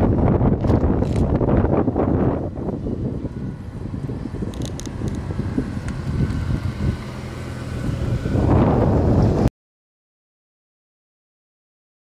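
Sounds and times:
car engine rumble: 0:00.0 - 0:09.5.

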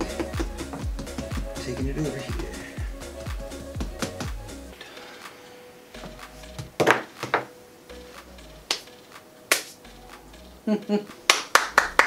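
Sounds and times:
faint background music: 0:00.0 - 0:12.0
sharp hand claps: 0:08.7 - 0:09.8, 0:11.1 - 0:12.0.

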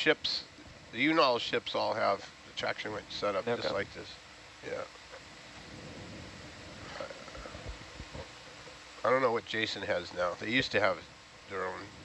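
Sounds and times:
low rumbling: 0:05.4 - 0:08.6
soft low thumps: 0:05.6 - 0:08.4.

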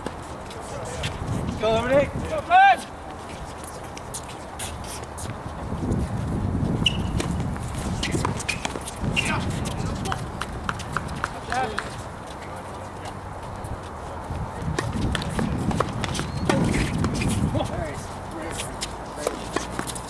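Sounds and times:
footsteps on hard court: 0:00.0 - 0:20.0
tennis balls bouncing on court: 0:03.0 - 0:13.6, 0:14.6 - 0:17.8, 0:18.4 - 0:20.0.

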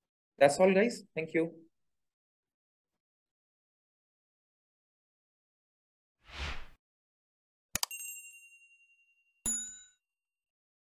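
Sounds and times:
short bell-like ding: 0:07.8 - 0:10.0
high ringing chime: 0:07.9 - 0:10.0.

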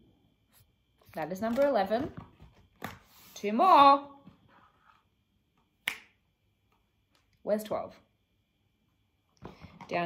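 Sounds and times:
finger snap: 0:05.8 - 0:06.2.

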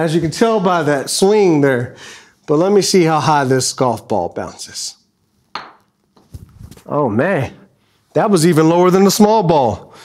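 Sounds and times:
golf ball bouncing on floor: 0:05.5 - 0:06.3.

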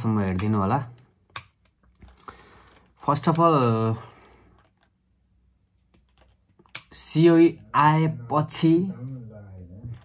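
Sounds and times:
sharp clicks: 0:00.0 - 0:01.9, 0:03.1 - 0:03.8, 0:05.9 - 0:07.0.

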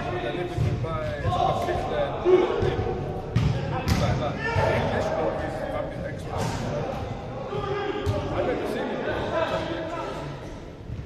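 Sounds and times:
players shouting: 0:01.2 - 0:05.5, 0:06.4 - 0:10.4
football kick thuds: 0:03.3 - 0:04.8.

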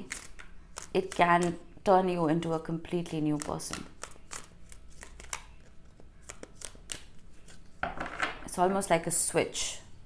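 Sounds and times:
cards being shuffled: 0:03.2 - 0:07.8.

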